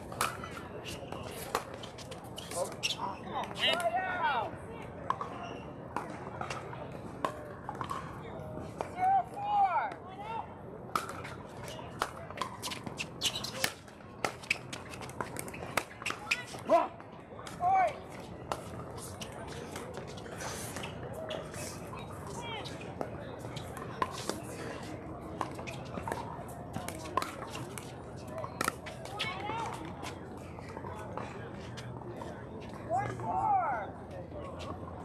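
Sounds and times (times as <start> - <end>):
players' voices: 0.0 - 14.6, 15.2 - 35.0.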